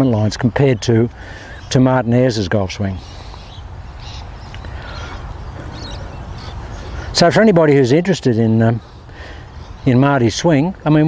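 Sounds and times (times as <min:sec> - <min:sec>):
distant bird calls: 0:00.0 - 0:11.0.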